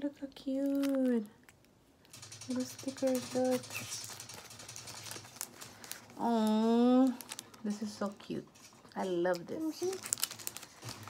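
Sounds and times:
rustling of small items: 0:00.1 - 0:11.0.

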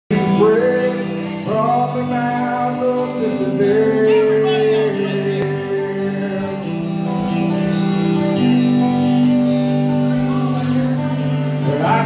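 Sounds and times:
man singing into microphone: 0:00.1 - 0:07.2, 0:11.6 - 0:12.0
amplified backing music: 0:00.1 - 0:12.0.

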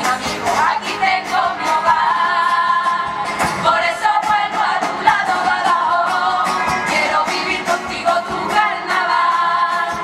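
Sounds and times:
drum beats: 0:00.0 - 0:10.0
strummed guitars: 0:00.0 - 0:10.0
women's chorus singing: 0:00.0 - 0:10.0.

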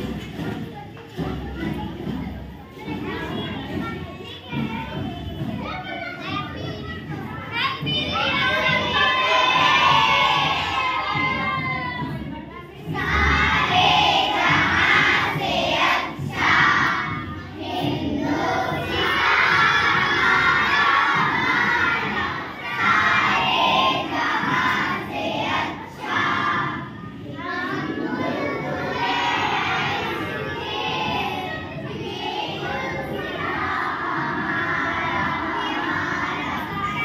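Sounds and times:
children chattering and calling out: 0:00.0 - 0:37.0
children shouting: 0:00.0 - 0:37.0.

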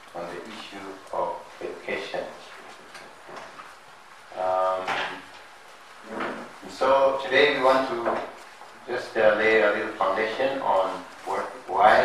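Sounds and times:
person speaking: 0:00.0 - 0:02.8, 0:04.3 - 0:05.4, 0:06.1 - 0:12.0.

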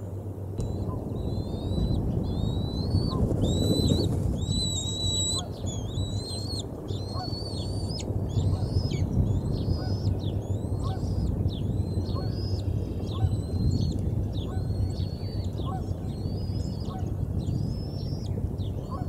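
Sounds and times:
low steady rumble: 0:00.0 - 0:19.0
eagle chick squealing: 0:00.6 - 0:11.3.

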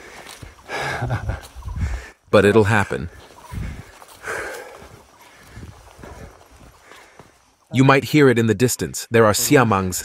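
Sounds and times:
man chuckling: 0:00.7 - 0:01.6.

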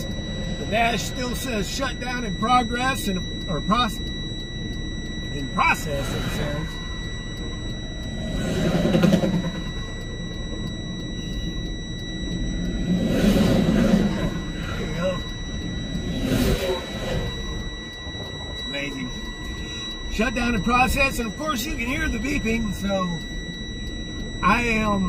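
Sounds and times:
dashboard warning alarm beeping: 0:00.0 - 0:25.0
low engine and road rumble: 0:00.0 - 0:25.0.

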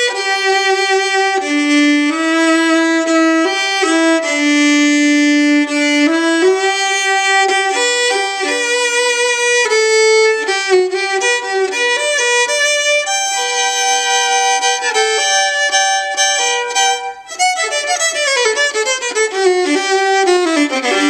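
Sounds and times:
bowed violin melody: 0:00.0 - 0:21.0.

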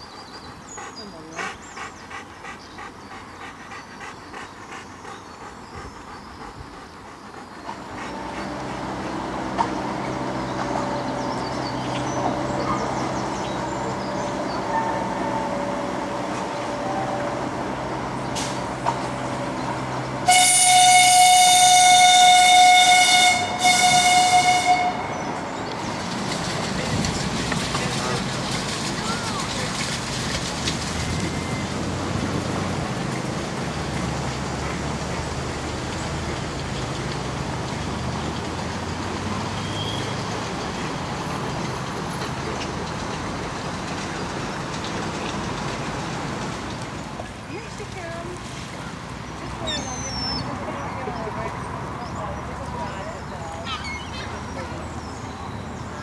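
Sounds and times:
outdoor background noise: 0:00.0 - 0:56.0
train horn blasts: 0:14.6 - 0:17.5, 0:20.2 - 0:25.3
miniature train running: 0:25.7 - 0:31.4.

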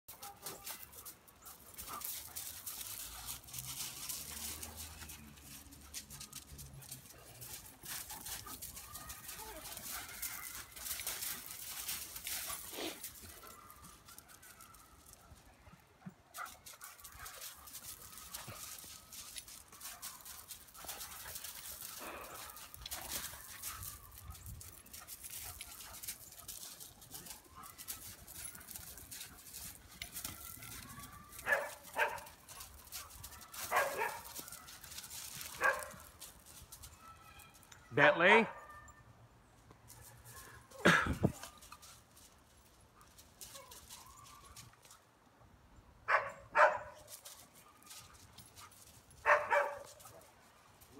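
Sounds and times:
paws scuffling on wood chips: 0:00.2 - 0:15.5, 0:16.3 - 0:37.7, 0:41.2 - 0:45.0, 0:46.6 - 0:50.9
dog barking: 0:31.4 - 0:32.4, 0:33.3 - 0:34.8, 0:35.6 - 0:36.0, 0:46.1 - 0:47.1, 0:49.2 - 0:50.0.

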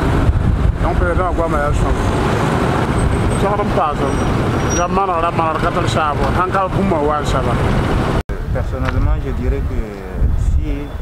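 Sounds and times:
traffic engines rumbling: 0:00.0 - 0:11.0.

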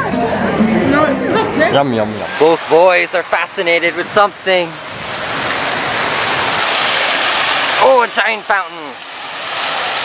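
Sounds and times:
fountain water splashing: 0:00.3 - 0:10.0.

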